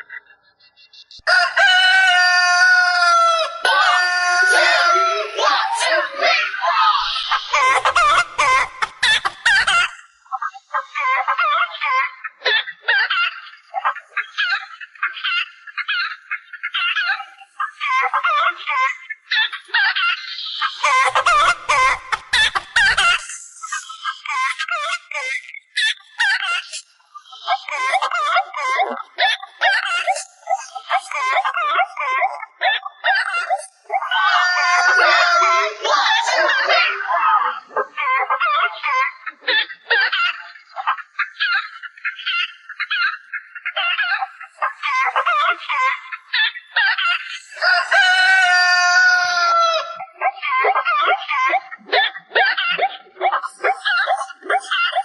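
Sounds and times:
pitch-shifted chicken clucks tune: 0:00.0 - 0:06.3, 0:19.3 - 0:24.2, 0:45.9 - 0:50.3
rooster crowing: 0:01.2 - 0:06.0, 0:34.0 - 0:36.5, 0:47.6 - 0:50.0.

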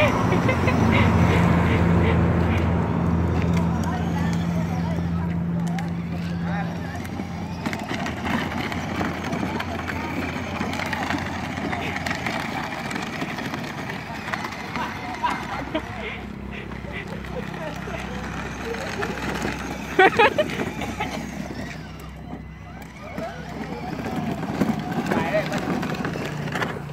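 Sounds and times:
toy car electric motors humming: 0:00.0 - 0:26.9
people talking: 0:03.3 - 0:26.2
plastic wheels rolling on gravel: 0:03.4 - 0:26.9.

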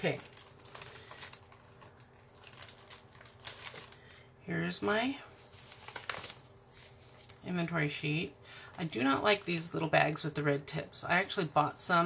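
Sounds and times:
plastic packaging crinkling: 0:00.0 - 0:07.5.

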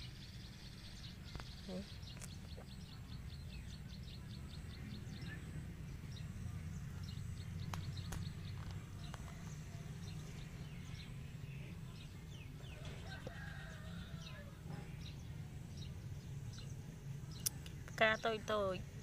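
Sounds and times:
birds chirping: 0:00.0 - 0:19.0
high ticking bird calls: 0:00.0 - 0:19.0
low rumble: 0:00.0 - 0:19.0.

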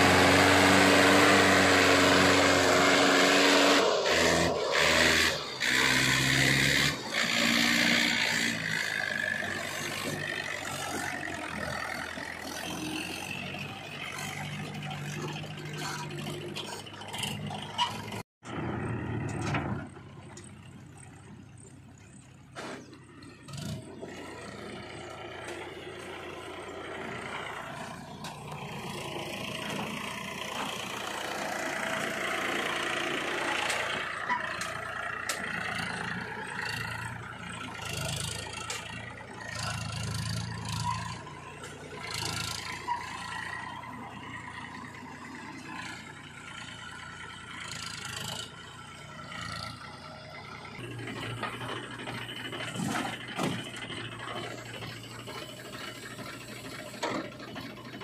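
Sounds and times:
diesel tractor engines running: 0:00.0 - 0:58.0.

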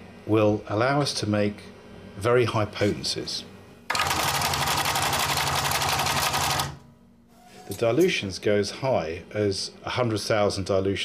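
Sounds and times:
steady hum: 0:00.0 - 0:11.0
machine mechanical chatter: 0:03.9 - 0:06.8.

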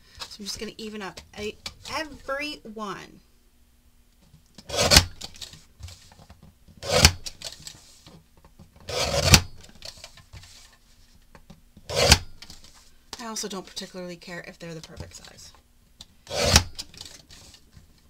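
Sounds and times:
paper trimmer blade scraping: 0:04.6 - 0:05.5, 0:06.8 - 0:07.6, 0:08.9 - 0:10.0, 0:11.9 - 0:12.2, 0:16.3 - 0:17.6.

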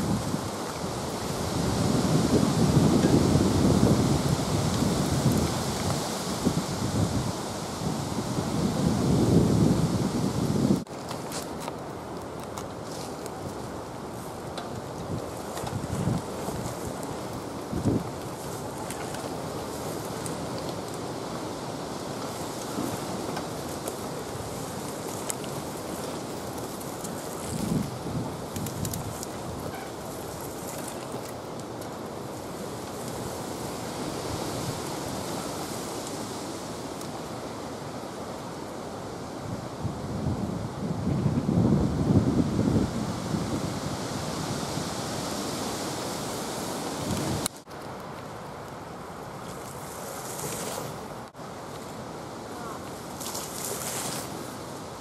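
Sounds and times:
wind buffeting microphone: 0:00.0 - 0:10.9, 0:13.4 - 0:21.3, 0:22.4 - 0:31.1, 0:39.4 - 0:47.5.

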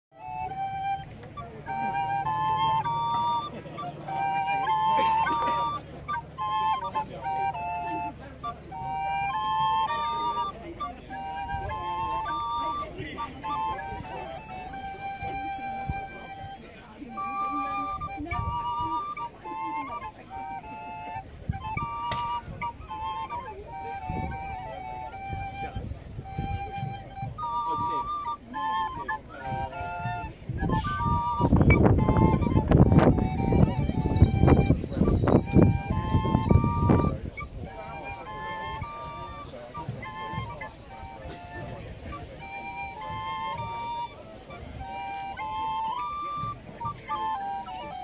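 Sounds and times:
wooden flutes duet: 0:00.1 - 0:48.0.

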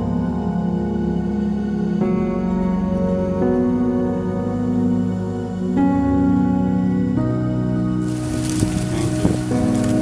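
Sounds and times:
soft background music: 0:00.0 - 0:10.0
rustling hiss: 0:08.0 - 0:10.0.

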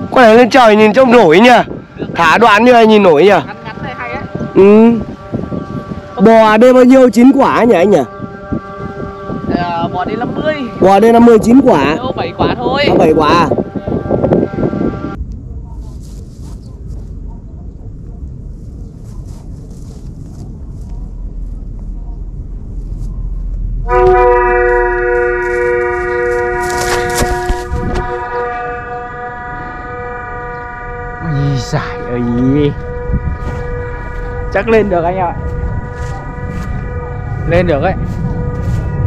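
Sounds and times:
kite flutes sounding: 0:00.0 - 0:15.2, 0:23.8 - 0:39.0
wind buffeting microphone: 0:00.0 - 0:39.0.

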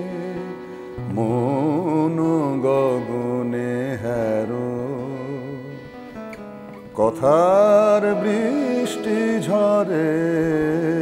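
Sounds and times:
harmonium drone: 0:00.0 - 0:11.0.

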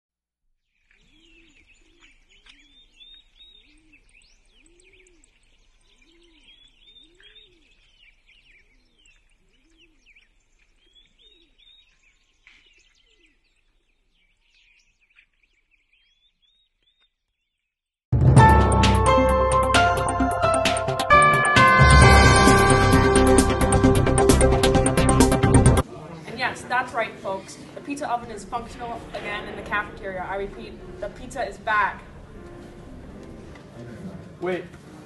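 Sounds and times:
small birds chirping: 0:00.6 - 0:17.8
low cooing bird call: 0:01.0 - 0:13.9.

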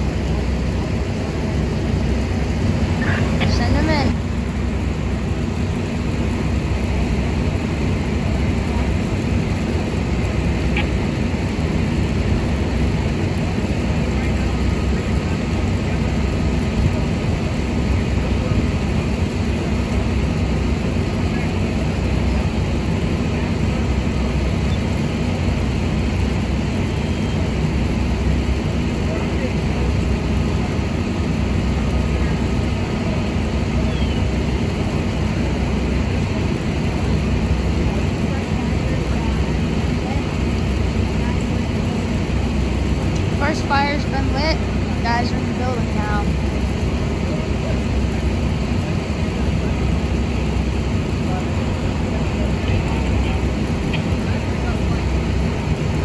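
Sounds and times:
low rumbling drone: 0:00.0 - 0:56.0.

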